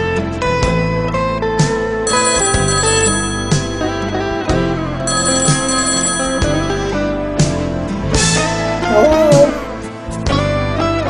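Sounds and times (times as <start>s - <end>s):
telephone ringing: 2.1s - 7.0s
slow ballad music: 8.7s - 10.0s.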